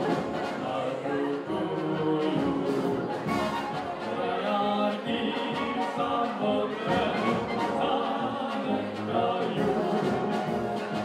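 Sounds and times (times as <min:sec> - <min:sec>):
brass band playing: 0:00.0 - 0:11.0
group singing into microphones: 0:00.0 - 0:11.0.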